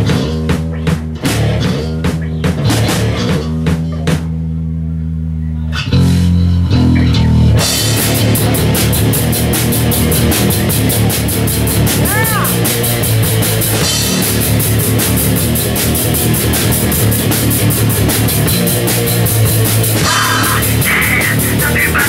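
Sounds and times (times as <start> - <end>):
distorted electric guitar: 0.0 - 4.3, 5.4 - 22.0
rapid drum hits: 0.0 - 4.3, 7.6 - 22.0
bass guitar: 0.0 - 22.0.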